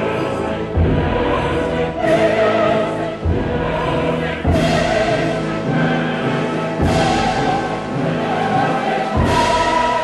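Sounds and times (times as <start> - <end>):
chorus singing with orchestra: 0.0 - 10.0.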